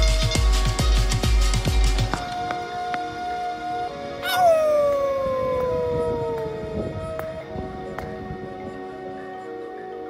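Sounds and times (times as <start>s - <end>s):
soft sustained music chords: 0.0s - 10.0s
long howl-like cry: 2.3s - 10.0s.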